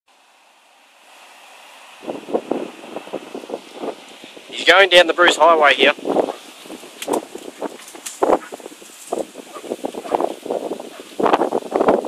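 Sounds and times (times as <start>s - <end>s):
faint steady hiss: 0.1s - 12.0s
wind buffeting microphone: 1.8s - 12.0s.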